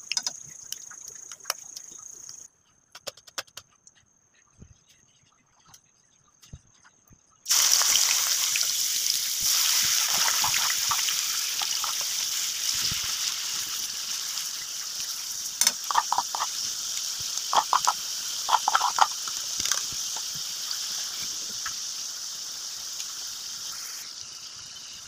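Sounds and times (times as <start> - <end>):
onion sizzling in hot oil: 7.5 - 25.0.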